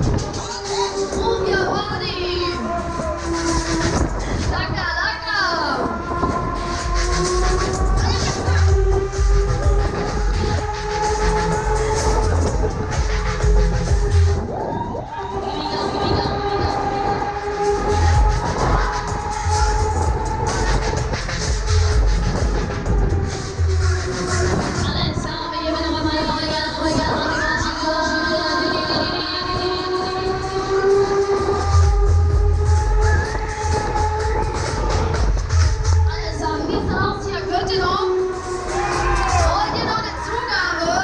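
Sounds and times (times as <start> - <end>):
loud music with heavy bass beat: 0.0 - 41.0.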